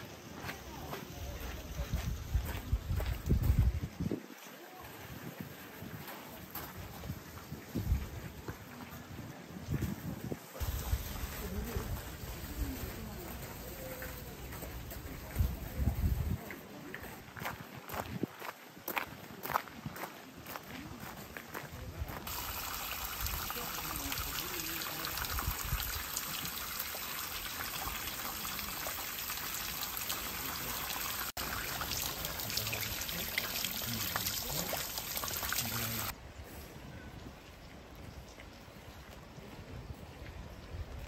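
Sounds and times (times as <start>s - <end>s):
stream water flowing: 22.3s - 36.2s.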